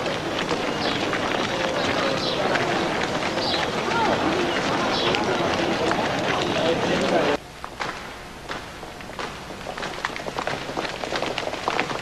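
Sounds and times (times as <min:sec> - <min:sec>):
murmur of overlapping voices: 0:00.0 - 0:07.4
many footsteps: 0:00.0 - 0:12.0.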